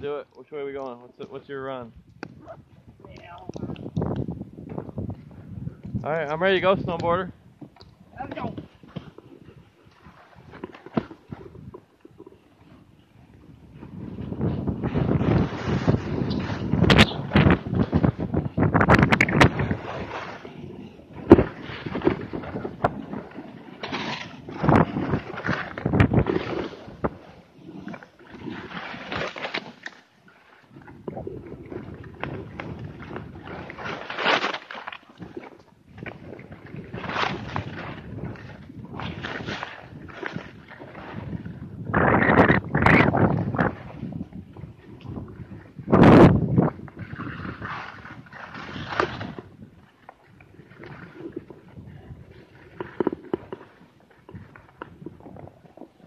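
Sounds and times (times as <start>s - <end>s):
skis scraping over snow: 14.2s - 18.0s.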